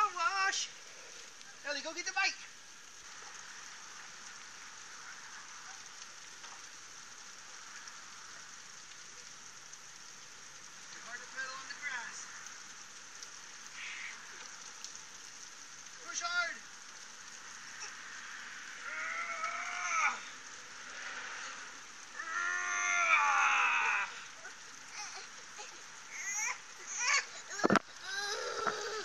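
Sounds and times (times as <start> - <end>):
water spraying on grass: 0.0 - 29.0.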